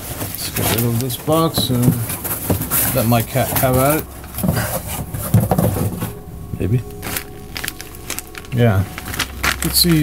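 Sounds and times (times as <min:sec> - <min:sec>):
cardboard and paper rustling: 0:00.0 - 0:10.0.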